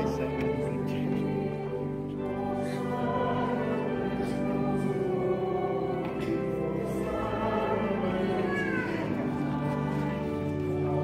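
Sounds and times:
church choir singing a hymn: 0.0s - 11.0s.

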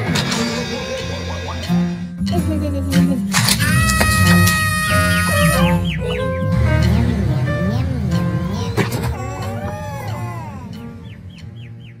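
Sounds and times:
background music: 0.0s - 12.0s
cartoon bird-like tweets: 3.6s - 6.6s.

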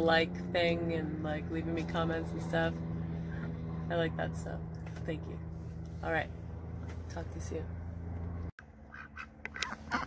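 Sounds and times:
low hum: 0.0s - 10.0s
ducks calling: 8.8s - 10.0s.

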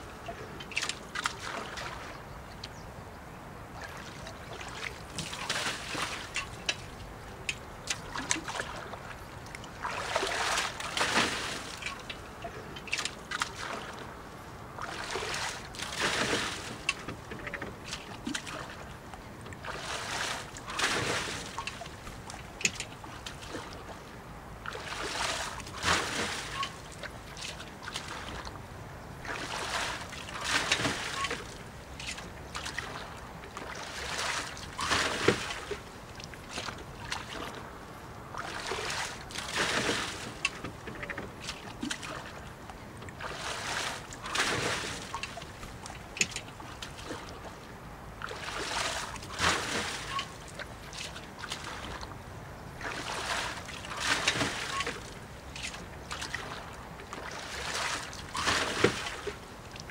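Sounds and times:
paddle splashing through water: 0.0s - 2.2s, 3.7s - 28.6s, 29.2s - 59.9s
knocks against boat: 34.8s - 35.8s, 58.3s - 59.4s.

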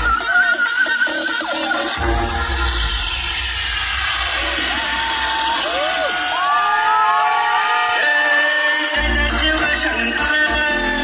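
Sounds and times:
crowd noise: 0.0s - 11.0s
dance music melody through loudspeakers: 0.0s - 11.0s.

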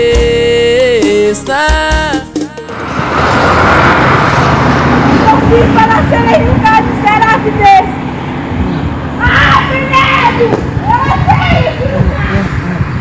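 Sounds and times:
song playing: 0.0s - 3.6s
car road and wind noise: 2.5s - 13.0s.

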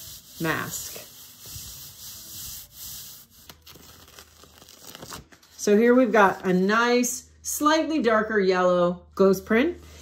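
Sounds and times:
palms rubbing paper swishing: 0.0s - 6.8s
small paper crackles: 3.5s - 5.6s.

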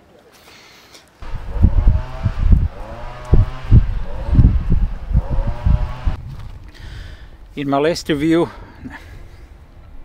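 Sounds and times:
vehicle engine hum: 1.2s - 6.2s
wind buffeting microphone: 1.2s - 7.5s.

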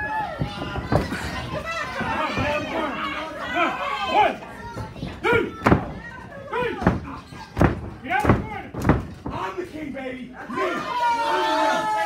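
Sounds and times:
voices shouting: 0.0s - 8.7s, 10.4s - 12.0s
hard blows smacking: 6.6s - 9.5s.

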